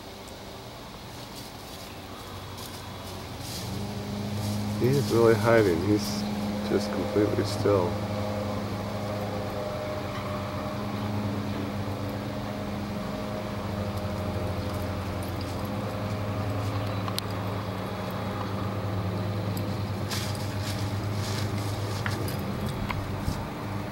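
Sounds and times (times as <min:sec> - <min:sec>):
low machine hum: 0:00.0 - 0:23.9
faint clicks: 0:13.9 - 0:18.6.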